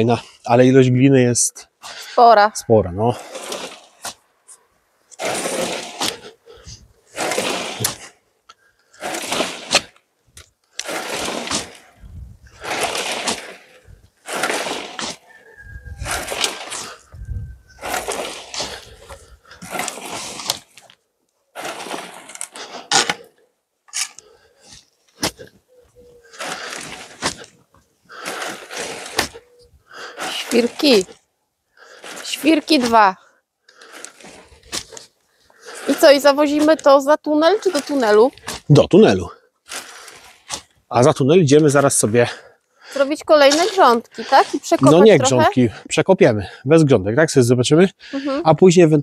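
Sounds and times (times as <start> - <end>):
soil sliding through sieve: 3.1 - 4.1, 5.2 - 8.2, 8.9 - 10.0, 10.7 - 20.9, 21.5 - 23.1, 28.1 - 29.4, 30.1 - 31.2.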